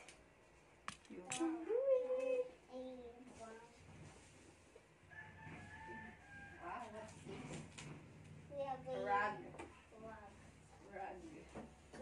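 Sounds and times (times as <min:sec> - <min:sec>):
rooster crowing: 0:05.1 - 0:06.9.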